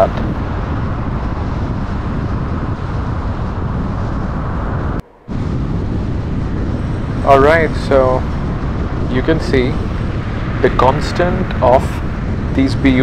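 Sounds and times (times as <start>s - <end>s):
car driving on highway: 0.0s - 13.0s.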